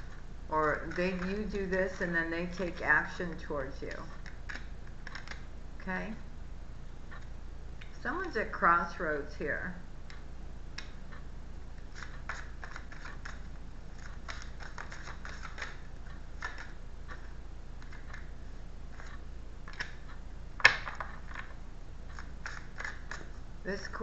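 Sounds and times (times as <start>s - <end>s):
cards being shuffled: 4.1s - 5.5s, 11.9s - 16.8s, 20.6s - 23.3s.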